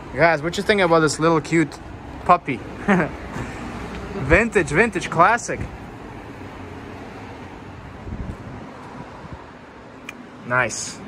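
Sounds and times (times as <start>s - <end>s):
car park background noise: 0.0s - 11.0s
wind on microphone: 7.6s - 9.6s.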